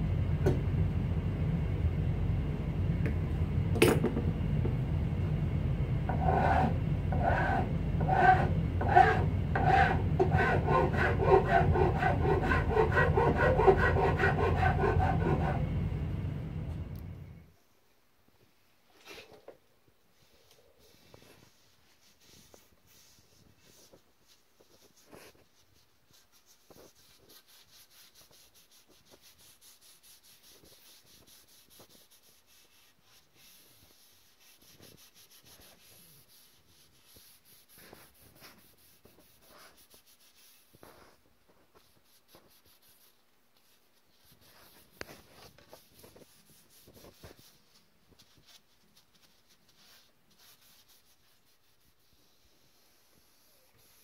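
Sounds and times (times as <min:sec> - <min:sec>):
paper towel rubbing on wood: 0:06.1 - 0:15.6, 0:20.8 - 0:54.0.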